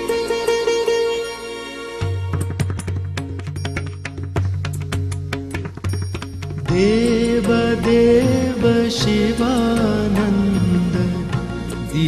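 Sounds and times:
light percussion strokes: 0.3 - 8.7.

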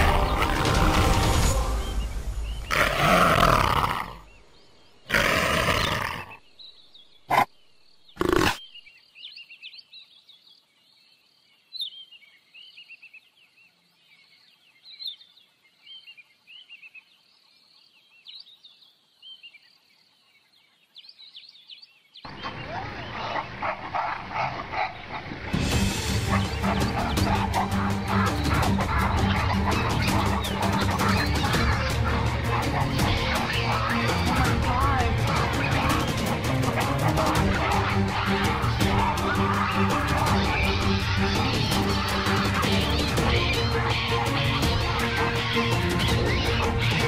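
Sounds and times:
wild animal calls: 2.6 - 4.3, 5.0 - 6.5, 7.3 - 7.6, 8.2 - 8.8, 22.3 - 47.0.

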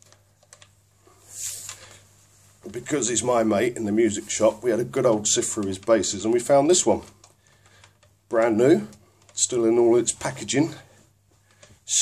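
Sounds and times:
camera rustling scrape: 1.2 - 2.0.

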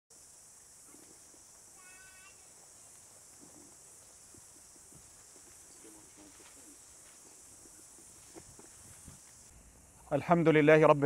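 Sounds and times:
faint high hiss: 0.1 - 11.0.

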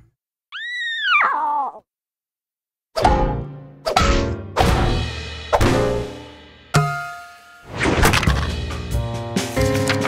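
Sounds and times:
lion cub cartoon roar: 0.5 - 1.8.

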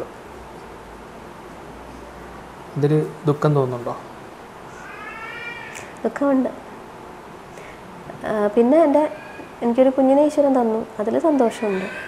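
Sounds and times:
high-pitched animal cry: 4.8 - 5.9, 8.9 - 9.7, 11.4 - 12.0.

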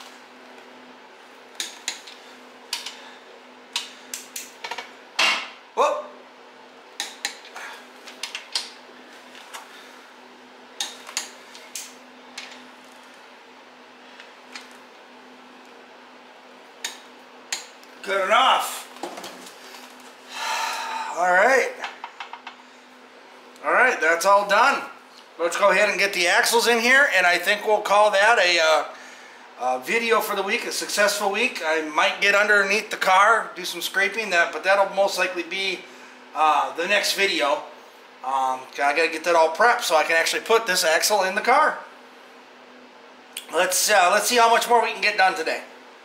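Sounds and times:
steady low hum: 0.0 - 46.0.

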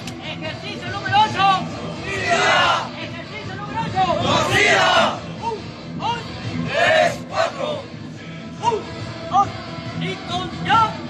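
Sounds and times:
group shouting in unison: 2.0 - 2.9, 4.2 - 5.2, 6.6 - 7.8.

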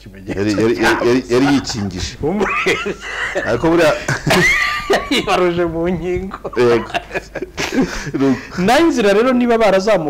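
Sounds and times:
men talking animatedly: 0.0 - 10.0.

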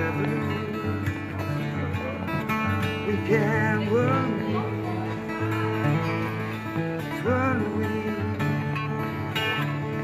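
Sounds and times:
acoustic guitar strumming: 0.0 - 10.0
man singing: 0.0 - 10.0.

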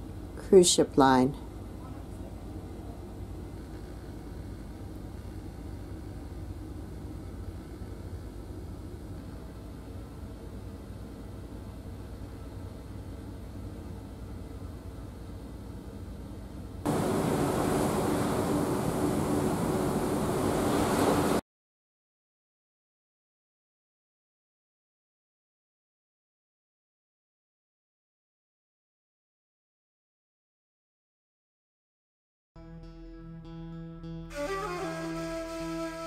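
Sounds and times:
ship engines rumbling: 16.9 - 21.4.

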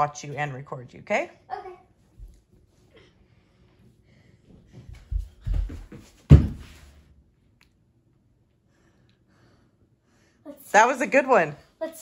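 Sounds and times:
feet and hands thudding on carpet: 4.8 - 7.0.

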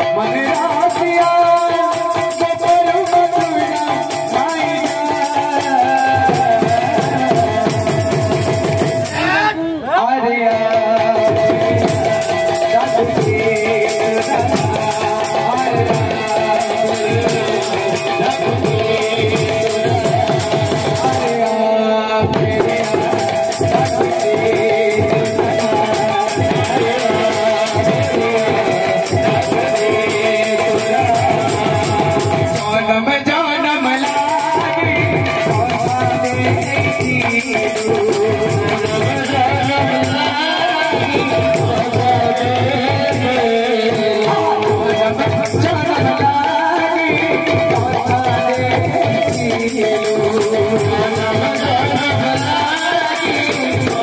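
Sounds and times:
hand-played barrel drums: 0.0 - 54.0.

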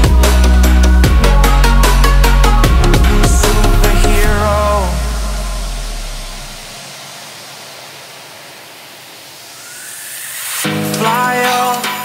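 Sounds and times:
synthesised noise sweep: 0.0 - 12.0
faint rising tone: 2.6 - 11.2
white-noise hiss: 3.5 - 12.0.

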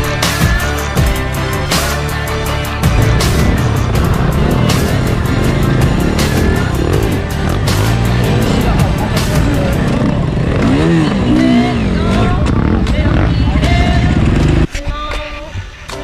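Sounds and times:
backing music track: 0.0 - 16.0
motorcycle engine revving: 1.2 - 14.7.

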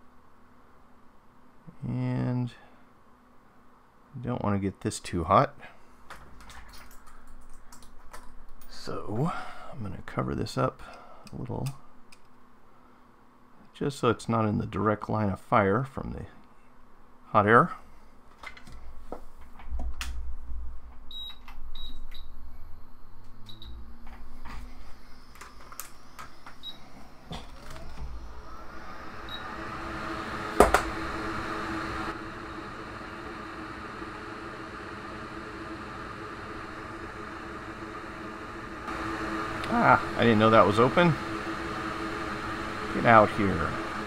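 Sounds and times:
hot air station blowing: 24.2 - 44.0.

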